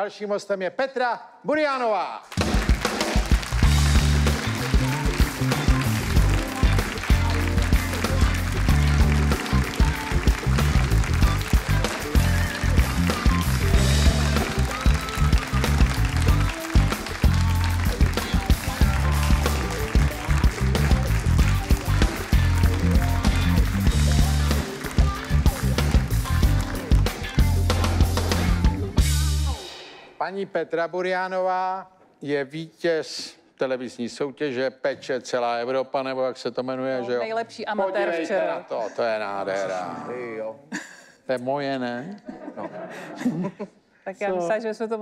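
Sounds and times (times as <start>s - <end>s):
live band playing: 2.3s - 30.2s
drums: 2.3s - 30.4s
bass guitar: 3.3s - 29.6s.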